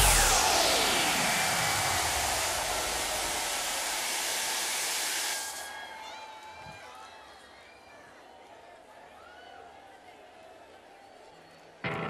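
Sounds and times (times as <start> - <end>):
gas jets hissing: 0.0 - 5.7.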